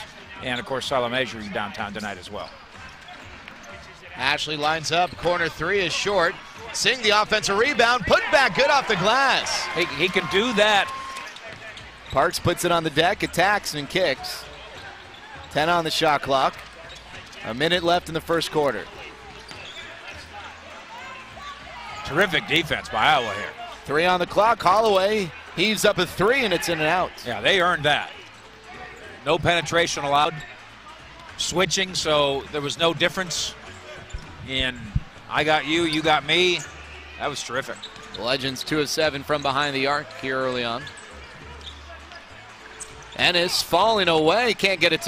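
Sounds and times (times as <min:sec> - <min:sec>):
basketball court noise: 0:00.0 - 0:45.0
faint arena crowd noise: 0:00.0 - 0:45.0.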